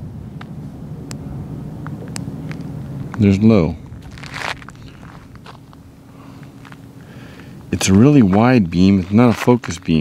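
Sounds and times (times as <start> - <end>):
footsteps on dirt road: 1.8 - 10.0.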